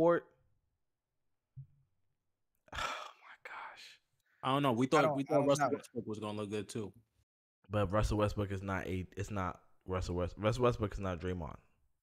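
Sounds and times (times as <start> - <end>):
man whispering: 2.7 - 4.1.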